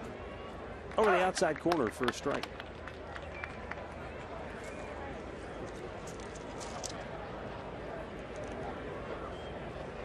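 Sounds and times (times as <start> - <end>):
murmur of spectators talking: 0.0 - 10.0.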